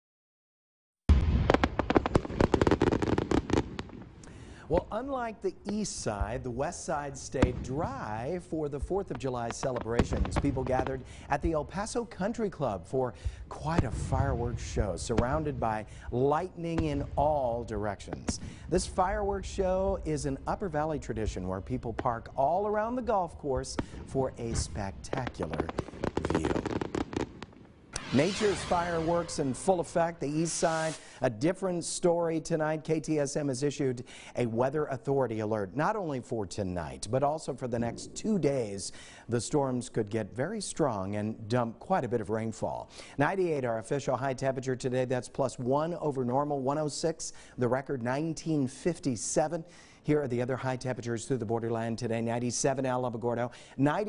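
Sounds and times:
fireworks crackling pops and bangs: 0:01.1 - 0:33.8, 0:35.8 - 0:47.6.

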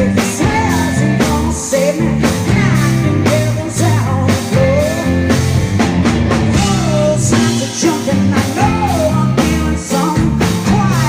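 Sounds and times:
woman singing: 0:00.0 - 0:05.1
drums: 0:00.0 - 0:11.0
electric bass: 0:00.0 - 0:11.0
keyboard: 0:00.0 - 0:11.0.

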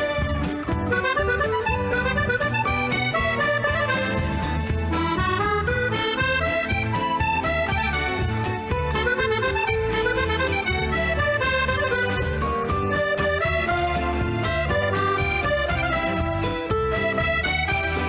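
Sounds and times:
bass line: 0:00.0 - 0:18.0
button accordion melody: 0:00.0 - 0:18.0.

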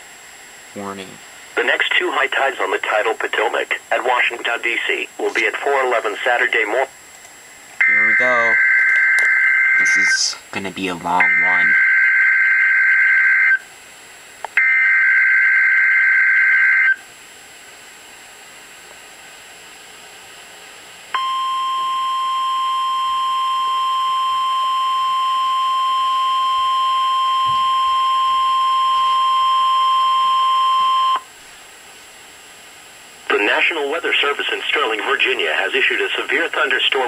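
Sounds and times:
buzzy data tones: 0:07.8 - 0:10.4
steady warning alarm tone: 0:07.8 - 0:10.4, 0:11.1 - 0:13.6, 0:14.6 - 0:17.0, 0:21.2 - 0:31.3.

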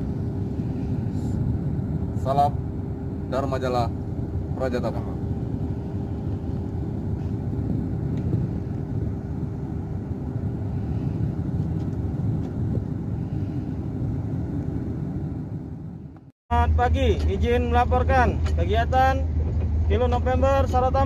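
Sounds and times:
boat engine rumbling: 0:00.0 - 0:21.0
faint steady hum: 0:00.0 - 0:21.0.

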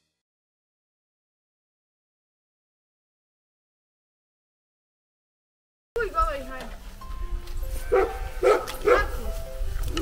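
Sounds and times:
background music: 0:06.0 - 0:10.0
dog barking: 0:07.9 - 0:09.2.

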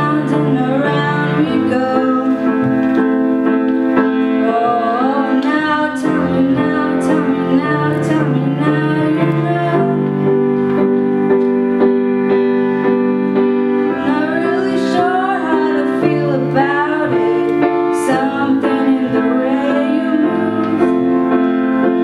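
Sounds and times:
woman singing: 0:00.0 - 0:02.7, 0:04.3 - 0:10.2, 0:13.9 - 0:21.2
grand piano playing chords: 0:00.0 - 0:22.0.

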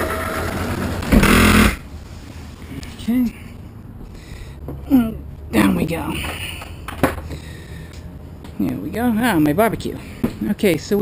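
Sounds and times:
electric motor running: 0:01.2 - 0:01.8.

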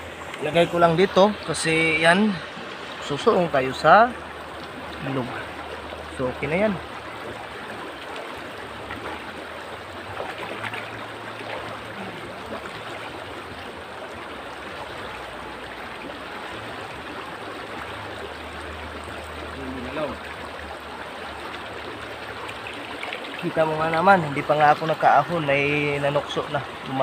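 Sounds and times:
river water rushing over rocks: 0:00.0 - 0:27.0.

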